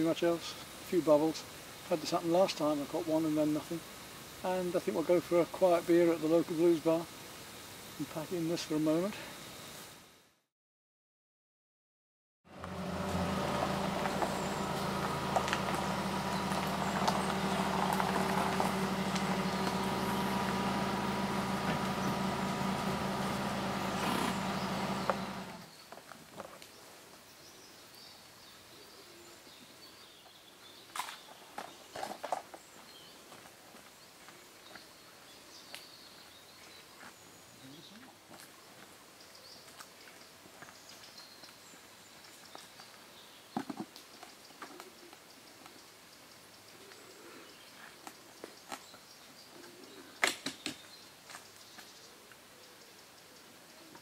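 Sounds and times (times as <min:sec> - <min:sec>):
car engine running: 0:12.5 - 0:25.7.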